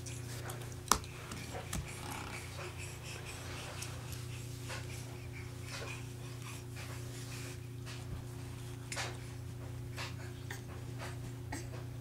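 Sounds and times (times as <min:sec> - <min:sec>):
steady low hum: 0:00.0 - 0:12.0
baby breathing hard: 0:01.7 - 0:07.6.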